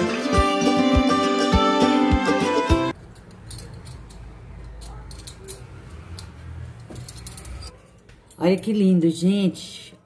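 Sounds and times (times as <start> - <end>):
metal spoons clinking: 2.9 - 8.7.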